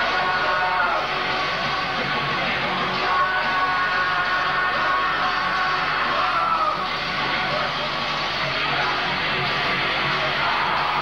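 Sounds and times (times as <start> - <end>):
person singing: 0.0 - 1.2, 2.2 - 6.9.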